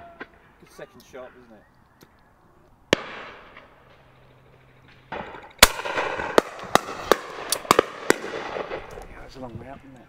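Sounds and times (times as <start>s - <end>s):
shotguns firing: 2.9s - 9.1s.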